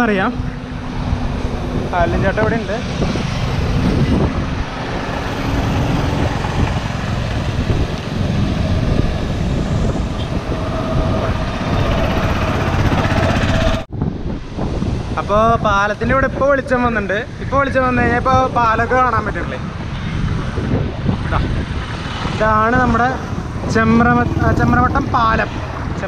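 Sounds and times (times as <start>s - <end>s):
road noise: 0.0s - 26.0s
wind buffeting microphone: 0.0s - 26.0s.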